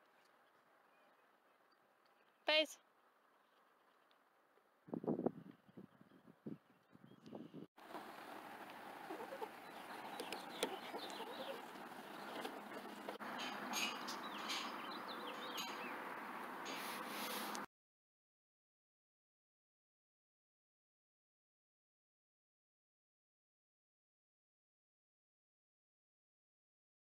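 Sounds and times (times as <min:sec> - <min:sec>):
small birds chirping: 0:00.0 - 0:02.6, 0:05.4 - 0:17.6
steady outdoor hiss: 0:07.8 - 0:17.7.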